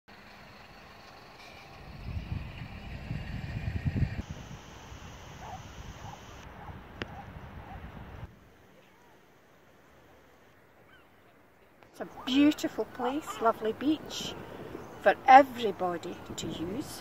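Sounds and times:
wind buffeting microphone: 1.8 - 8.4.

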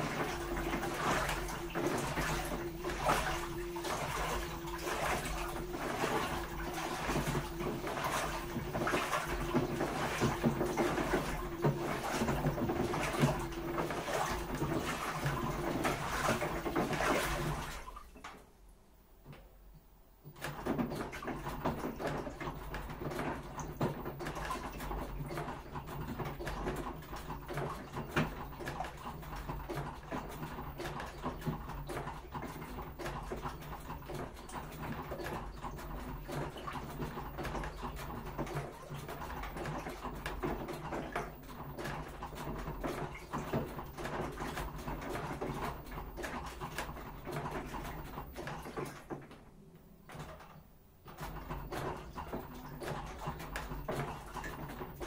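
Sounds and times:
motor hum: 0.0 - 18.0
washing machine drum turning: 0.0 - 18.5, 20.2 - 55.0
water sloshing: 0.0 - 18.6, 20.2 - 55.0.

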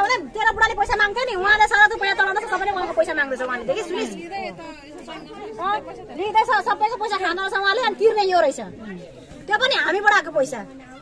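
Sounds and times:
crowd of people talking: 0.0 - 11.0.

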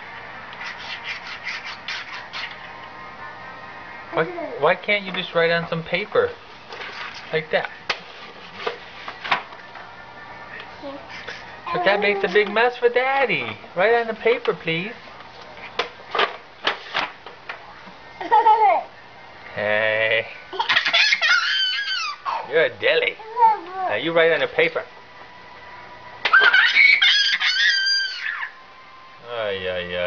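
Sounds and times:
toddler squealing laugh: 10.9 - 12.4, 20.5 - 22.5, 26.3 - 28.6.

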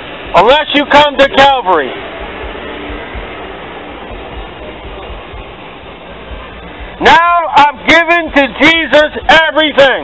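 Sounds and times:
low rumble: 1.8 - 7.0.

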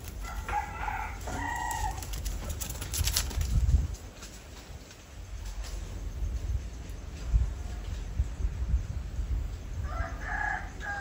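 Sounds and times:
rooster crowing: 0.2 - 2.2, 9.8 - 11.0.

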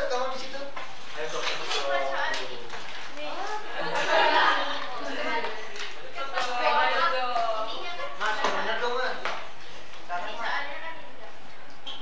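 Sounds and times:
students talking: 0.0 - 12.0.

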